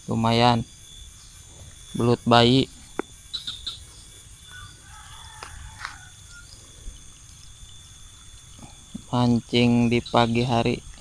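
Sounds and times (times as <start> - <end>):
birds chirping faintly: 0.0 - 11.0.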